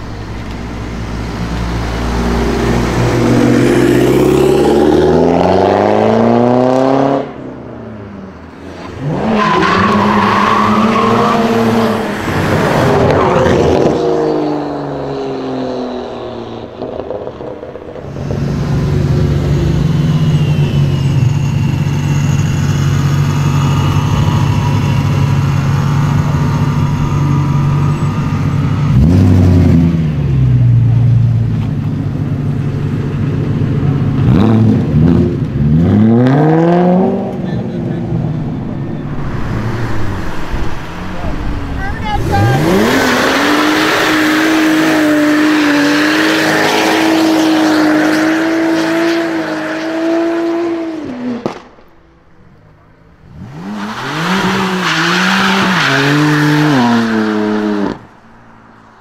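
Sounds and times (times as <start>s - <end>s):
car accelerating hard: 1.4s - 7.5s, 8.5s - 31.4s, 32.1s - 51.6s, 53.2s - 58.2s.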